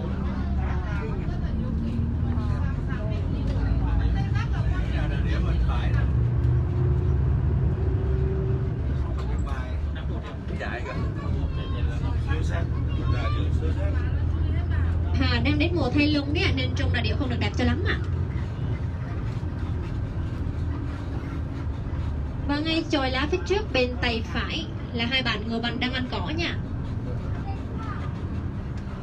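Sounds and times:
bus engine humming: 0.0s - 29.0s
murmur of passengers' voices: 0.0s - 29.0s.

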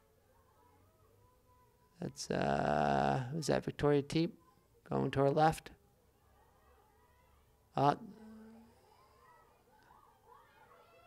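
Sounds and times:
faint background noise: 0.0s - 11.0s
man saying uh: 2.1s - 3.7s.

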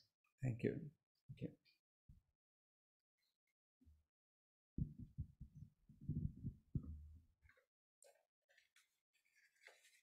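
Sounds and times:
microphone handling thumps: 4.8s - 7.0s.

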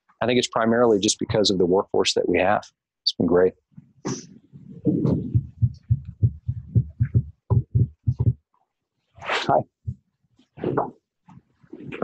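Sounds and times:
dull low thumps: 3.8s - 8.4s.

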